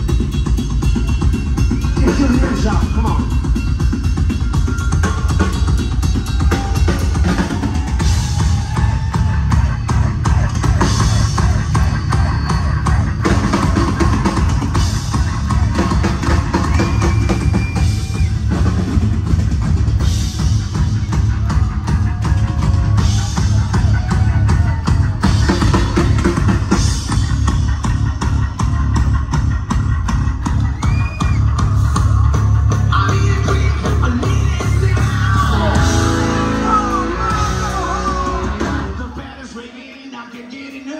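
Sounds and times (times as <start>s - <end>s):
drum kit driving beat: 0.0s - 39.6s
rock band playing: 0.0s - 40.9s.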